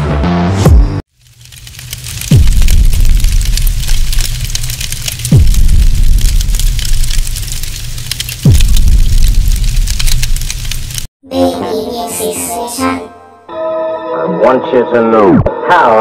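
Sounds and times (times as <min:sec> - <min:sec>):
fire-like crackle: 0:01.1 - 0:11.1.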